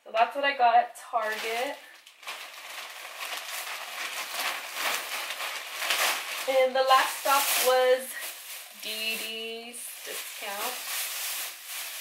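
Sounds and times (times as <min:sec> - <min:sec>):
plastic bag rustling: 0:01.1 - 0:12.0.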